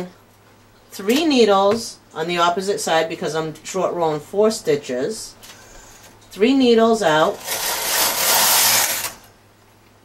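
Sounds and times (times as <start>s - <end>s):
knitting machine carriage sliding: 7.3s - 9.3s.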